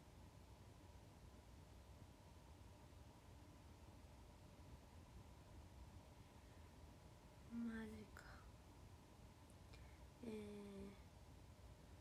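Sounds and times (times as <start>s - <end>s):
soft click or breath: 9.7s - 10.0s
woman humming: 10.2s - 11.0s.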